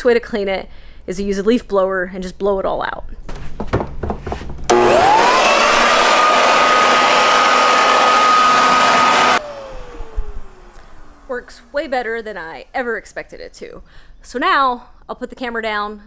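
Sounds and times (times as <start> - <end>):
leaf blower motor whine: 4.7 - 12.6.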